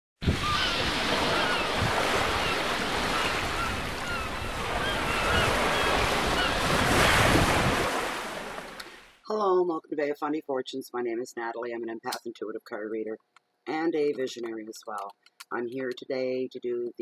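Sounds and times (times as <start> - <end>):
ocean surf breaking: 0.2 - 9.2
birds chirping: 0.4 - 7.2.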